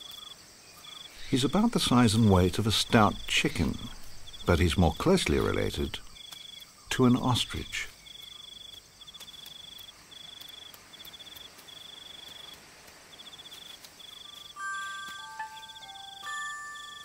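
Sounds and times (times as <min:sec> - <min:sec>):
crickets chirping: 0:00.0 - 0:17.0
soft chime-like music notes: 0:14.5 - 0:17.0.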